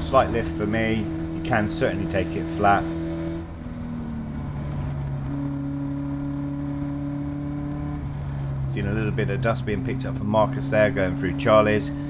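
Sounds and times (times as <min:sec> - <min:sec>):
race car engine at high revs: 0:00.0 - 0:12.0
wind and road noise: 0:00.0 - 0:12.0.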